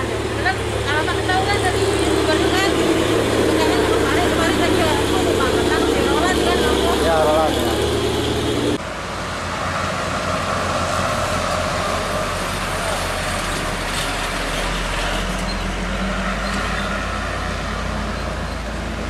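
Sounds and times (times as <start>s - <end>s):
diesel truck engine under load: 0.0s - 19.0s
road traffic passing: 0.0s - 19.0s.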